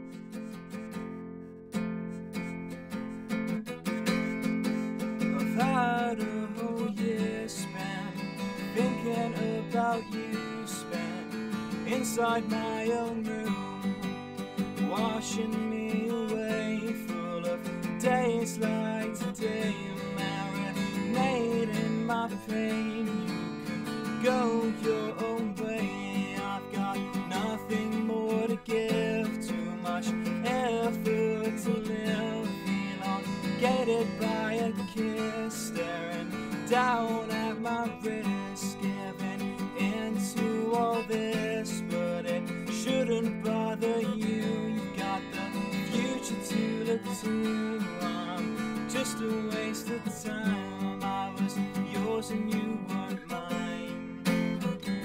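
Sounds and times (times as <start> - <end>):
acoustic guitar strumming: 0.0 - 55.0
man singing: 4.9 - 55.0.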